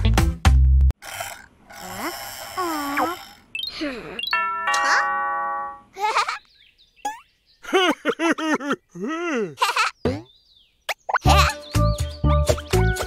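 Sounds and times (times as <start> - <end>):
cartoon sliding vocal sounds: 1.1 - 4.2.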